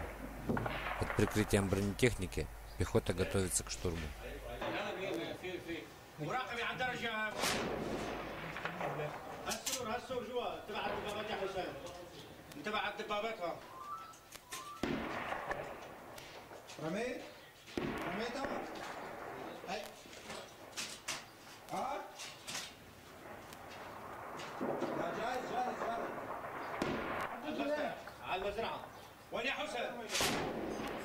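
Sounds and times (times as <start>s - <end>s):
heavy bangs with rumble: 0.0s - 2.3s
gunshots: 0.0s - 2.5s, 7.3s - 11.7s, 13.7s - 16.6s, 17.8s - 21.1s, 23.2s - 27.9s, 30.1s - 31.0s
voices calling out: 0.8s - 7.3s.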